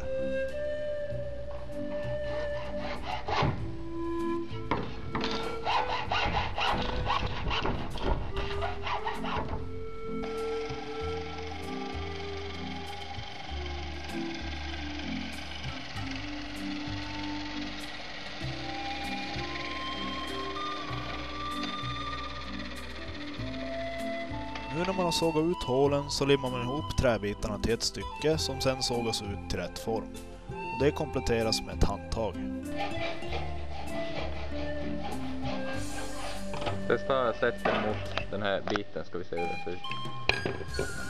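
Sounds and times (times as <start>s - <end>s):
drill press running: 0.0s - 36.9s, 39.8s - 41.0s
background music held notes: 0.0s - 41.0s
hacksaw cutting rod: 2.2s - 30.1s, 30.9s - 36.9s.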